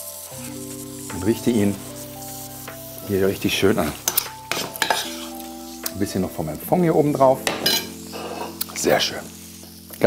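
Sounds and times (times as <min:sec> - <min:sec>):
soft background music: 0:00.0 - 0:10.0
metal spoon scraping frying pan: 0:03.8 - 0:05.8, 0:07.5 - 0:08.7.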